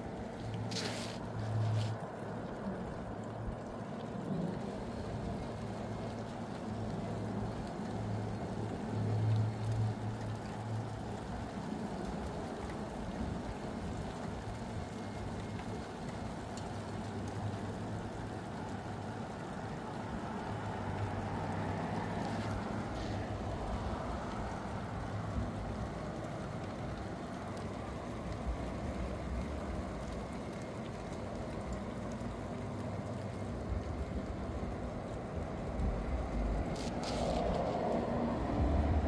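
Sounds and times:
rain hissing: 0.0s - 39.0s
low rumble: 35.2s - 39.0s.

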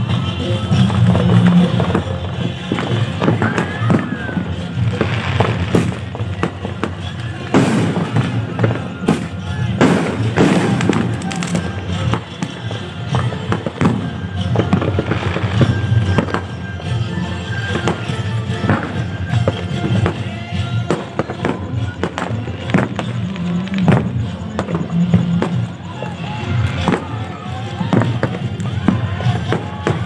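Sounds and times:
fireworks bangs and crackles: 0.0s - 30.0s
music playing: 0.0s - 30.0s.

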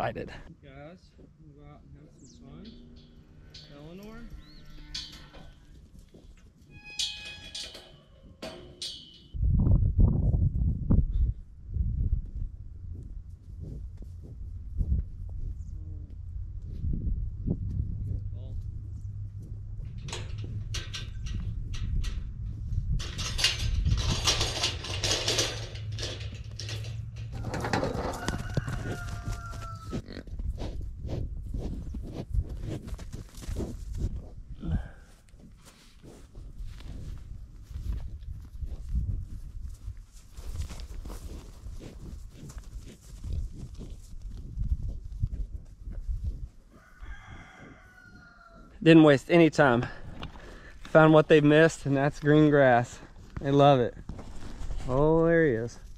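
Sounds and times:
steady low hum: 10.7s - 27.8s
bird crowing: 27.3s - 30.0s, 46.7s - 48.8s
rustling: 35.1s - 46.9s, 52.9s - 55.9s.

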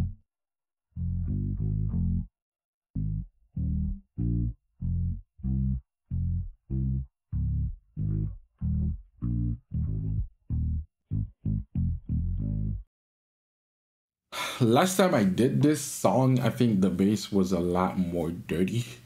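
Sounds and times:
synth bass line: 1.0s - 2.3s, 3.0s - 12.9s.

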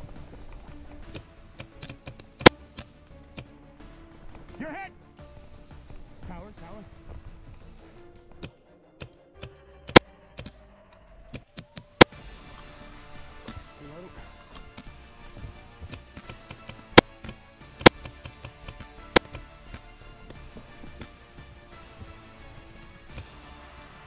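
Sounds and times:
background music: 0.0s - 24.0s
paintball marker shots: 1.1s - 3.5s, 9.9s - 10.6s, 15.9s - 19.9s.

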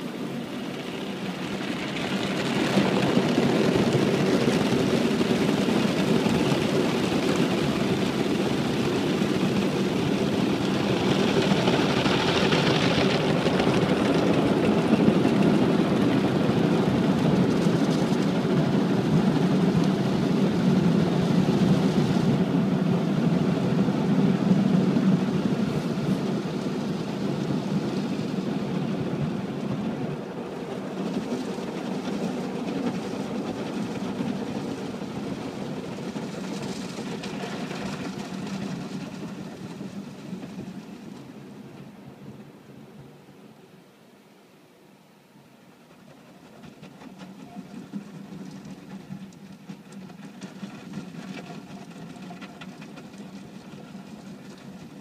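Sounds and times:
car wash drying blowers: 0.0s - 42.0s.

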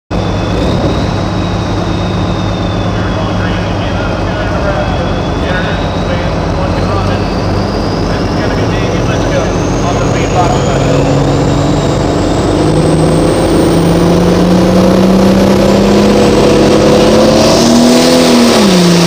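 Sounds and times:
high turbo whine: 0.1s - 19.0s
tractor diesel engine running hard: 0.1s - 19.0s.

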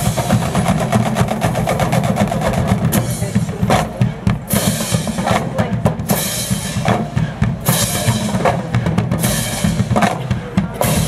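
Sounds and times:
marching band drumming: 0.0s - 11.0s.

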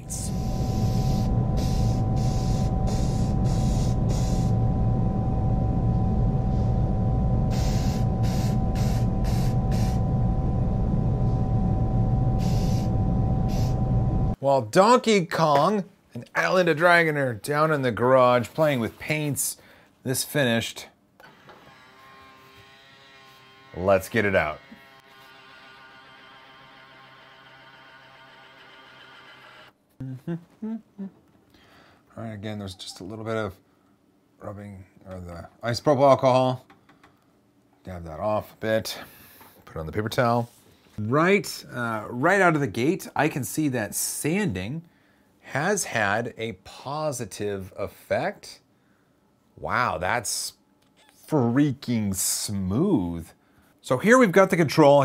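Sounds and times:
low machine hum with whine: 0.0s - 14.4s
spray can hissing: 7.5s - 10.0s.

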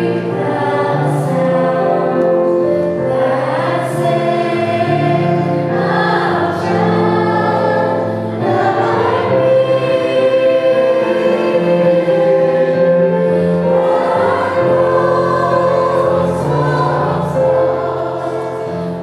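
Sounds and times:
choir singing slow chords: 0.0s - 19.0s.

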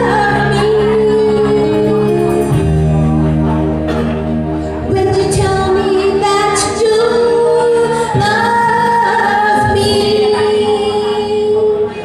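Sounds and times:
woman singing into a microphone: 0.0s - 3.0s, 4.8s - 12.0s
backing music: 0.0s - 12.0s.

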